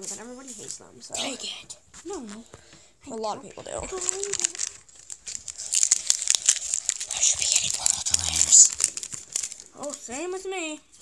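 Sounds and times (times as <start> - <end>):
foil wrapper tearing and crinkling: 3.8 - 10.4.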